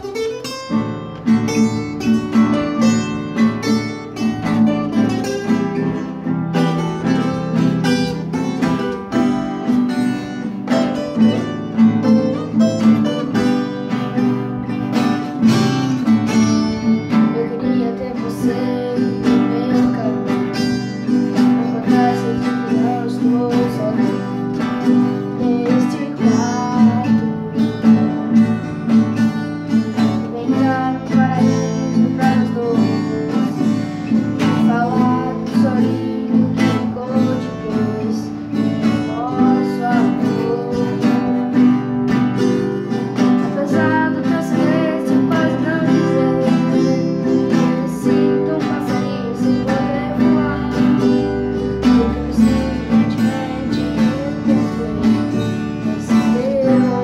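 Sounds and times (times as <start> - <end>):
classical guitar strumming: 0.0 - 57.0
person singing: 0.0 - 57.0.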